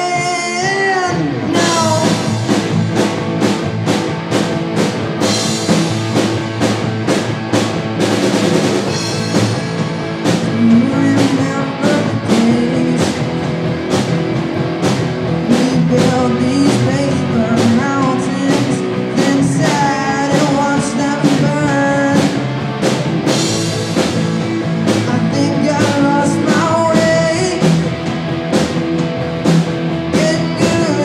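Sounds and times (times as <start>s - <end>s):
drum kit beat: 0.0s - 31.0s
electric bass: 0.0s - 31.0s
electric guitars: 0.0s - 31.0s.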